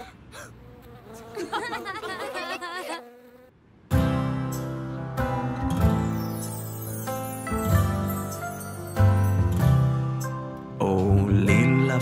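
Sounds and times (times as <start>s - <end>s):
cartoon bee buzzing voice: 0.6s - 3.5s.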